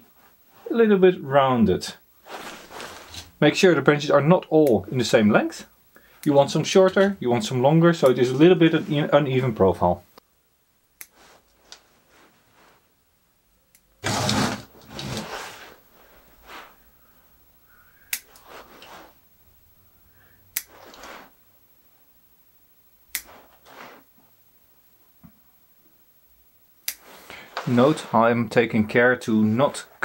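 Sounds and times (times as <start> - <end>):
rustling of needles and branches: 2.2 - 3.4.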